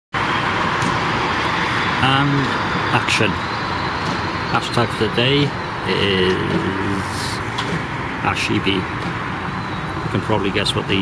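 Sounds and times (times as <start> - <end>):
town street traffic: 0.1 - 11.0.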